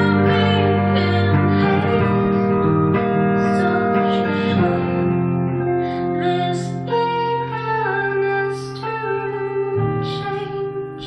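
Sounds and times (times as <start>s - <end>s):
electric guitar gliding notes: 0.0s - 11.0s.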